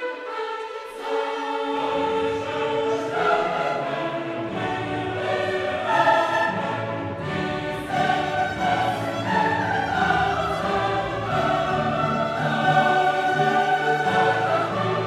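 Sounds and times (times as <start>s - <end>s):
choir singing held notes: 0.0s - 15.0s.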